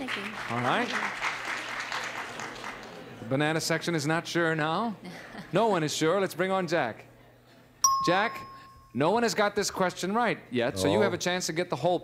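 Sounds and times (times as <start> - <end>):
audience applauding: 0.0 - 3.2.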